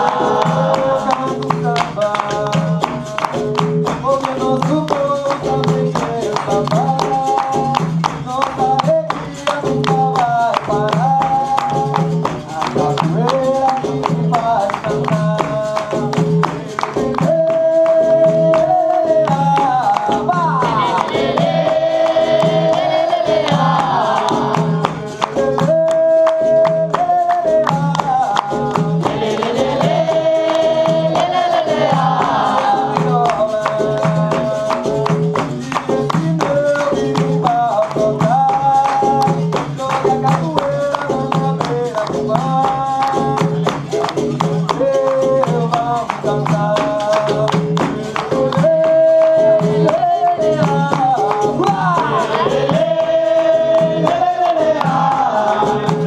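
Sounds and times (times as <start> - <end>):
hand clapping: 0.0 - 56.0
hand percussion: 0.0 - 56.0
person singing: 0.0 - 56.0.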